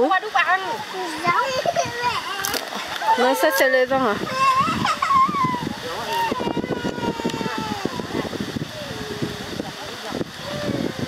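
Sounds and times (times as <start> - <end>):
voices speaking: 0.0 - 11.0
long drawn-out vocal sound: 4.2 - 11.0.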